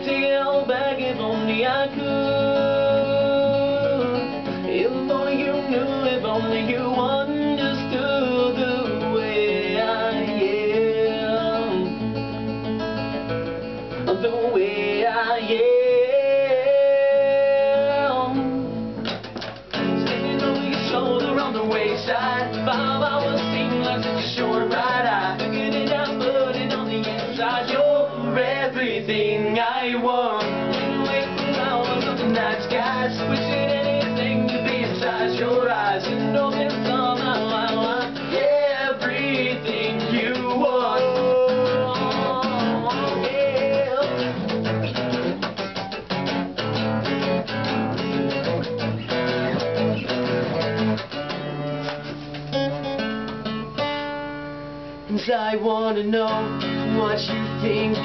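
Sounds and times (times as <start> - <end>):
acoustic guitars strummed: 0.0 - 58.0
voices singing in harmony: 20.0 - 44.4.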